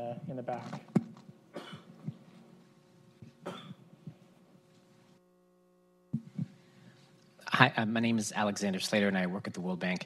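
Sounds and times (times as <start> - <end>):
faint cough: 1.5 - 2.0, 3.4 - 3.9.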